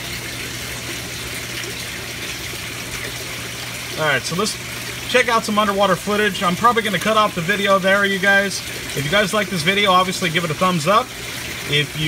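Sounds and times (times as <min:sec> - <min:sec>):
water rushing in a tank: 0:00.0 - 0:12.0.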